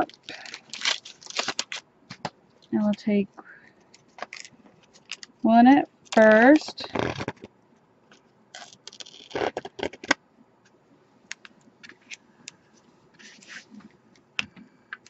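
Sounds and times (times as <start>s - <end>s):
adhesive strip and card rustling: 0.0s - 1.8s.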